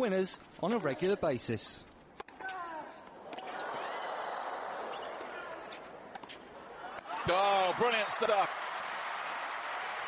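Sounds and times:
crowd noise: 0:03.0 - 0:10.0.

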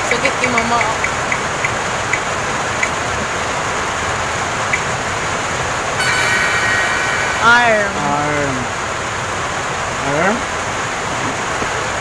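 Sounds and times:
electronic chime: 0:06.0 - 0:09.0
steady hiss: 0:06.0 - 0:10.3.

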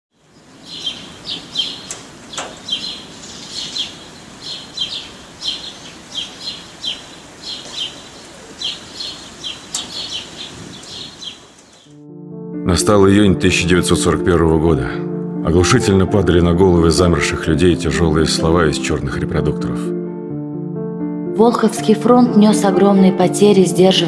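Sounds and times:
birds chirping: 0:00.1 - 0:12.0
steady hiss: 0:00.2 - 0:11.9.

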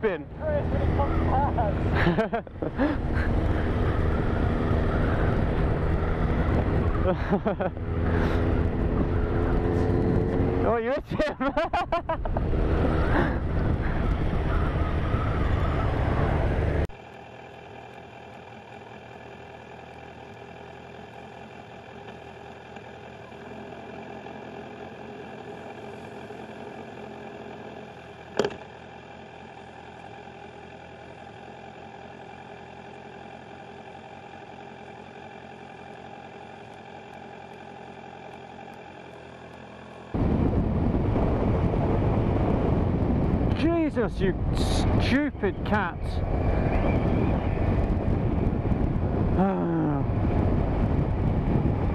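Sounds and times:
motorcycle engine: 0:00.0 - 0:51.9
wind rush on microphone: 0:12.1 - 0:15.9, 0:40.2 - 0:51.9.

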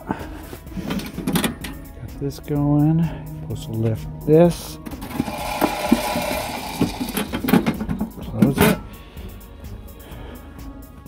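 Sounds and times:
stove hopper lid clicks and rattles: 0:00.9 - 0:01.8, 0:05.1 - 0:08.8.

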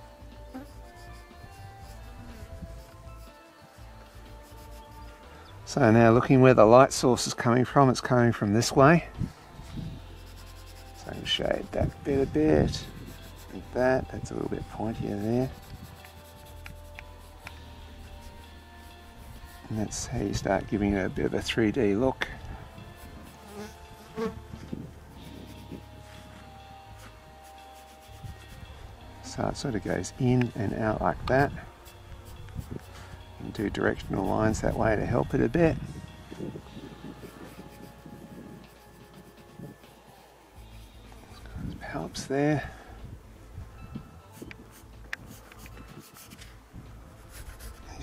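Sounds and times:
small flies buzzing: 0:00.0 - 0:05.4, 0:22.7 - 0:28.8
pencil scratching on paper: 0:00.5 - 0:05.1, 0:10.0 - 0:13.8, 0:14.4 - 0:19.8, 0:27.0 - 0:28.7, 0:37.1 - 0:39.8, 0:44.7 - 0:46.4, 0:47.3 - 0:48.0.

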